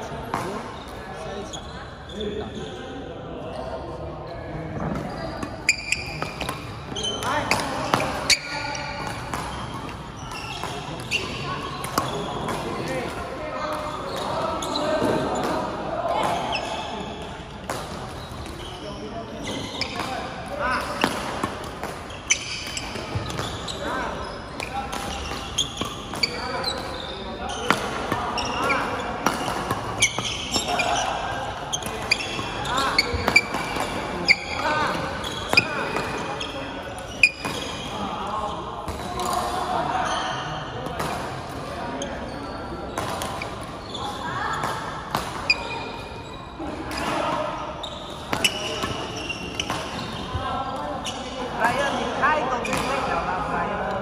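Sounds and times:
murmur of voices: 0.0 - 54.0
shoes squeaking on court floor: 0.2 - 54.0.

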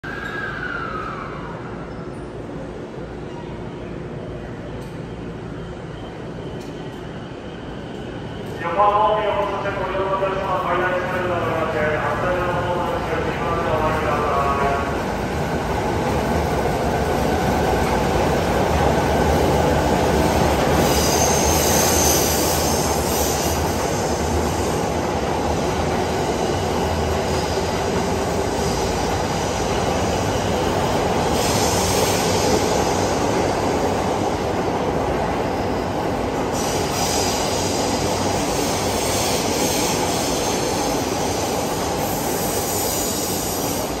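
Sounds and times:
wheels squealing on rails: 0.0 - 2.6, 18.3 - 34.3, 35.5 - 44.0.

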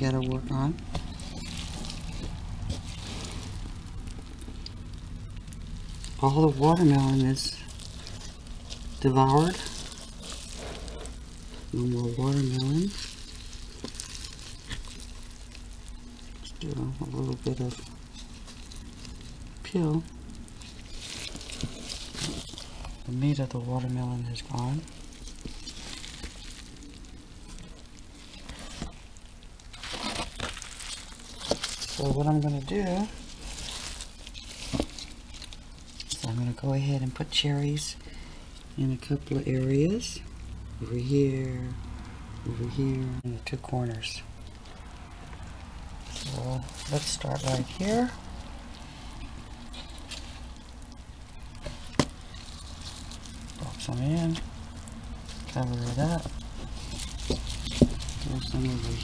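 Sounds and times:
hand rustling through bedding: 0.0 - 4.6, 5.6 - 27.0, 29.8 - 36.0
crackles: 0.0 - 59.0.

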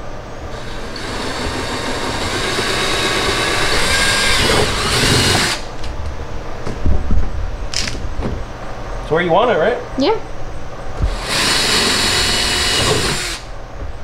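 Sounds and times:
cordless drill whining: 0.6 - 5.6, 11.1 - 13.5.

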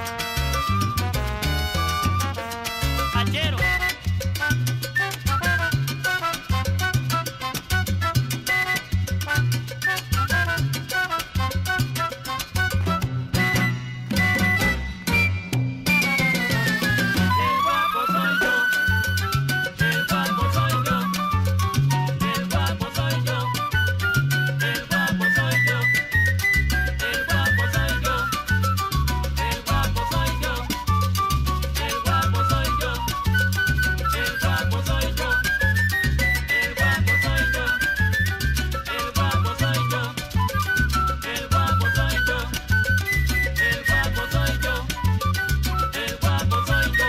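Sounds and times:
salsa music: 0.0 - 47.0.

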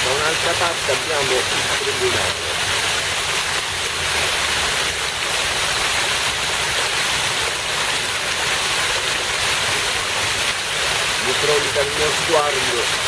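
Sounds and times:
fountain water splashing: 0.0 - 13.0.

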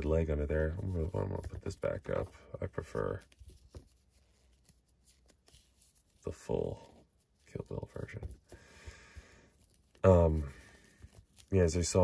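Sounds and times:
cloth rustling: 0.0 - 12.0.

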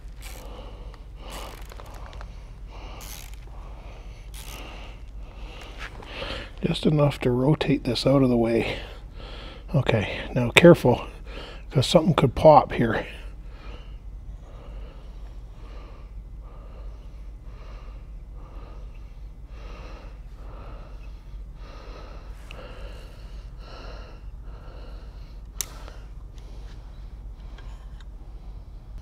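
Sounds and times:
man breathing close to microphone: 0.0 - 6.7, 8.6 - 10.3, 11.1 - 11.7, 13.1 - 27.6
low steady hum: 0.0 - 29.0.

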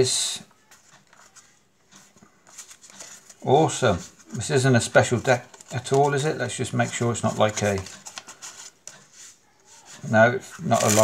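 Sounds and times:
playing cards sliding and clicking: 5.1 - 9.4.

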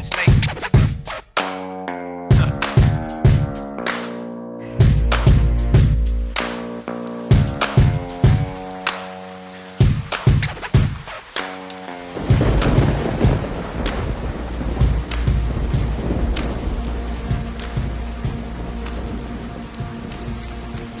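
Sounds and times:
hip-hop beat: 0.0 - 21.0
heavy rain: 4.8 - 21.0
thunder clap and rumble: 12.2 - 21.0.

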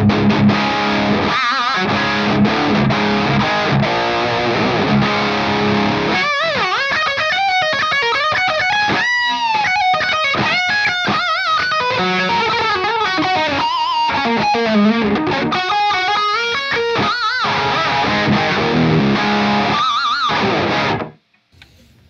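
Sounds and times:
overdriven electric guitar lead: 0.0 - 21.2.

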